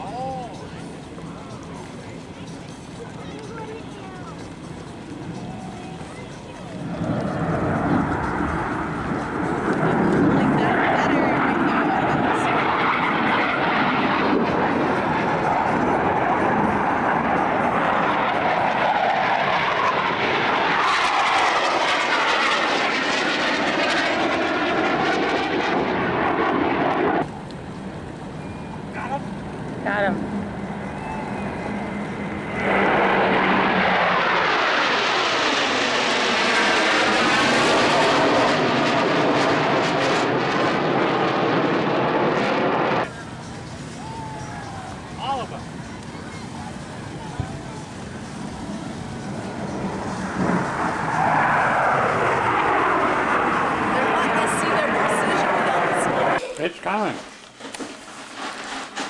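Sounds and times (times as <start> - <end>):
jet aircraft roaring overhead: 0.0 - 59.0.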